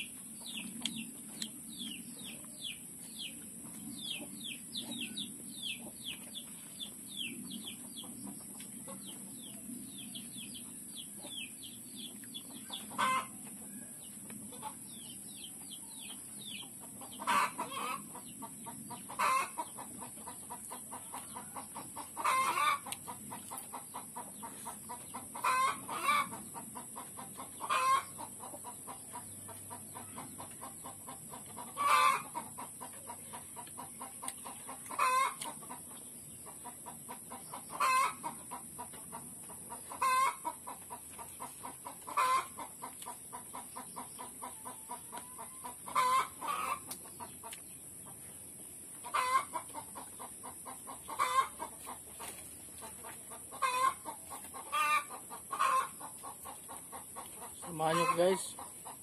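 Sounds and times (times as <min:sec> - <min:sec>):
chickens clucking: 0:00.0 - 0:59.0.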